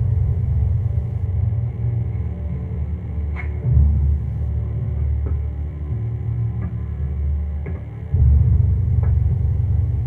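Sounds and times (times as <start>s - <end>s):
low rumbling drone score: 0.0s - 10.0s.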